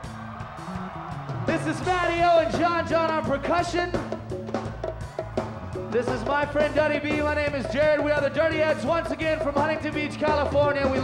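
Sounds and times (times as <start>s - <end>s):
drum and percussion hits: 0.0s - 11.0s
live band playing: 0.0s - 11.0s.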